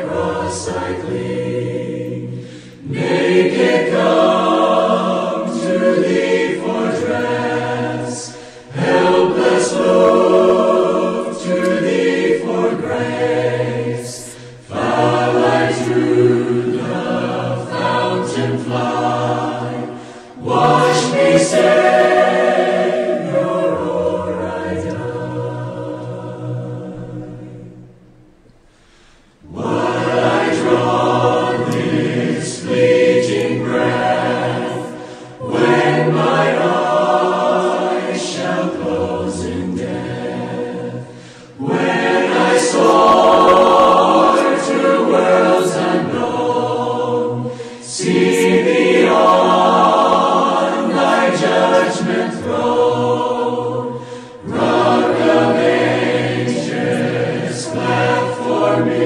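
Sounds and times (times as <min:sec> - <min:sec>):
choir singing a slow hymn: 0:00.0 - 0:59.0.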